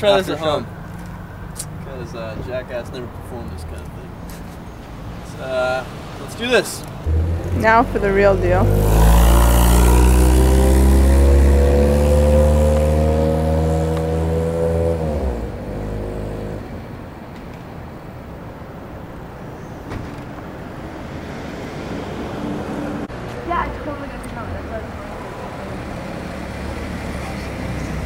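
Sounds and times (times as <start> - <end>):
car engine accelerating: 7.1 - 16.8.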